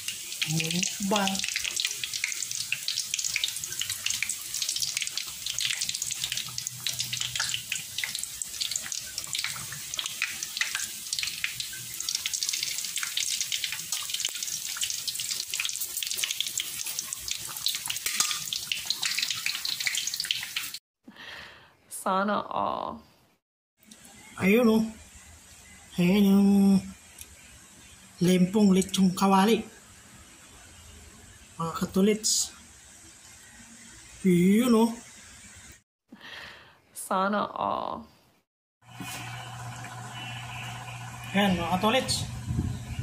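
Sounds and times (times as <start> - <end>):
meat deep-frying in oil: 0.0 - 20.8, 31.3 - 35.8, 38.8 - 43.0.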